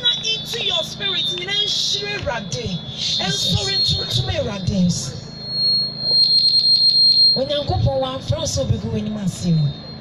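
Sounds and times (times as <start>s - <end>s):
microphone feedback whistle: 0.3s - 8.5s, 9.2s - 10.0s.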